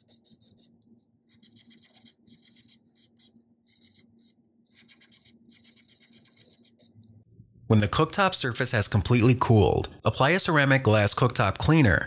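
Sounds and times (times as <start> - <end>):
razor scraper scraping glass: 1.3 - 7.0.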